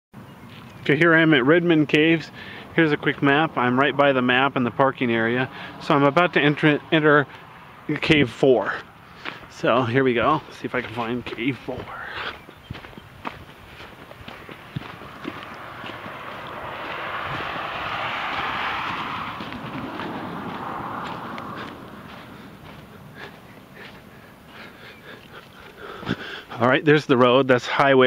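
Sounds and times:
footsteps on gravel: 0.4 - 1.3, 2.8 - 27.3
vehicle passing: 0.4 - 26.6.

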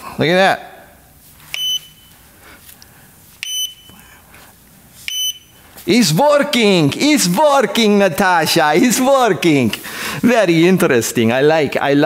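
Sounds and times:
high electronic beeps: 1.5 - 2.2, 3.4 - 4.0, 5.1 - 5.6.

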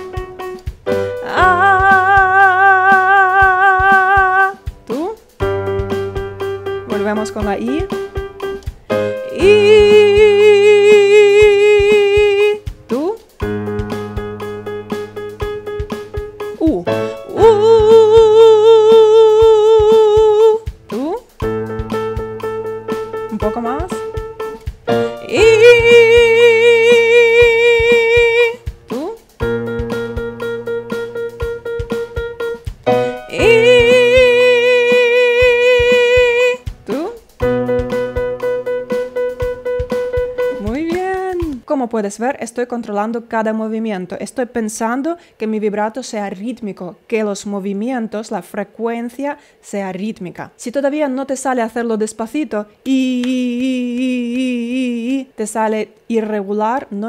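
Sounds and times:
steady ticking beat: 0.0 - 18.6, 19.4 - 41.6
keyboard chords: 0.0 - 41.6
woman singing with vibrato: 1.2 - 4.6, 9.2 - 12.6, 16.6 - 21.2, 25.0 - 29.2, 33.0 - 37.2, 52.9 - 55.4.

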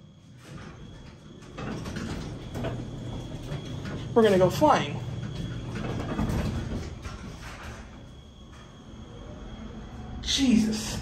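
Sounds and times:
elevator doors sliding open: 0.0 - 11.0
low mechanical hum: 0.0 - 11.0.

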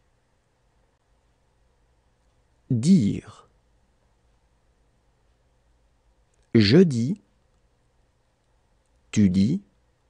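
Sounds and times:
man speaking: 2.7 - 3.5, 6.6 - 7.3, 9.2 - 9.7.

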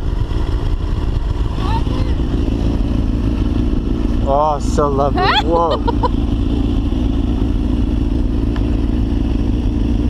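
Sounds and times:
motorcycle engine idling: 0.0 - 10.0.

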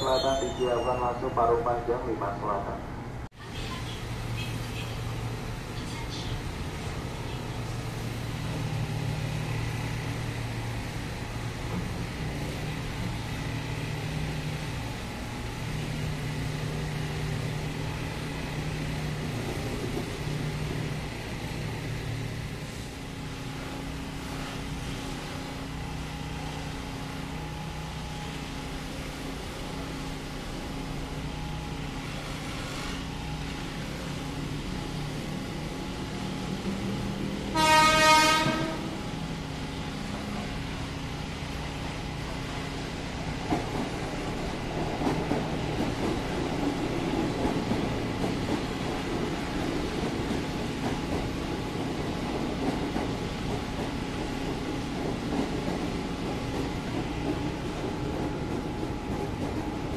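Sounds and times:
electric train humming: 5.0 - 59.9
train horn blast: 37.5 - 39.1.

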